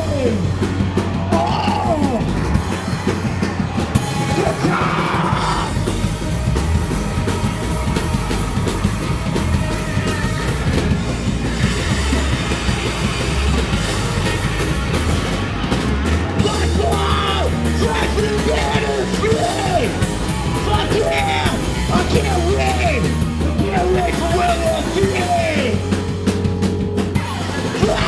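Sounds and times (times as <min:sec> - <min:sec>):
bass guitar: 0:00.0 - 0:28.0
drum kit: 0:00.0 - 0:28.0
electric guitar: 0:00.0 - 0:28.0
person singing: 0:16.4 - 0:20.0.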